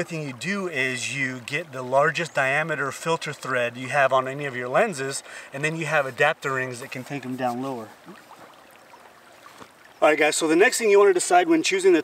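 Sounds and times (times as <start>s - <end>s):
shallow river flowing: 0.0s - 12.0s.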